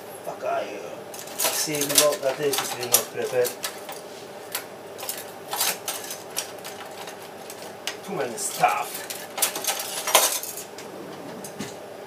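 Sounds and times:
kitchen utensils clattering: 1.2 - 11.8.

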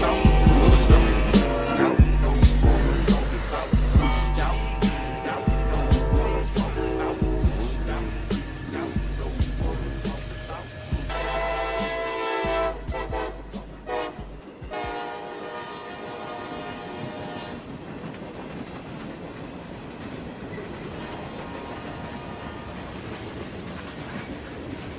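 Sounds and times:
freight cars rolling: 0.0 - 14.8, 16.9 - 24.9
locomotive air horn: 0.0 - 17.7, 20.9 - 22.9.

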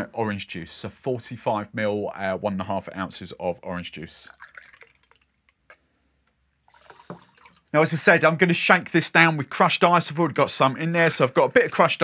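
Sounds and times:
juice pouring into metal tin: 4.2 - 5.3, 6.7 - 7.7.

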